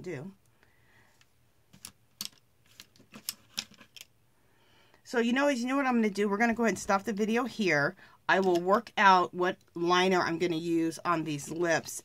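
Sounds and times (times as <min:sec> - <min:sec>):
art supplies clicking and tapping: 0:01.7 - 0:04.1.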